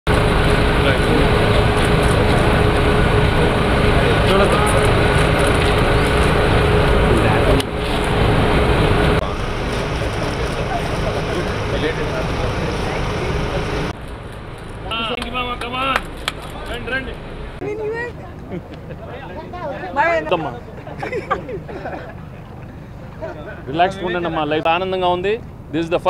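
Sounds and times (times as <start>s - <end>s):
vehicle engine rumble: 0.1s - 26.0s
crowd chatter: 0.7s - 14.0s, 14.7s - 24.6s.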